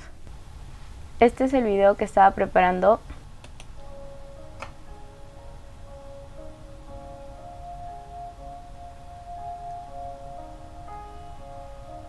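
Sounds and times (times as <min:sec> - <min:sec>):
faint music from laptop speakers: 0:01.0 - 0:12.0.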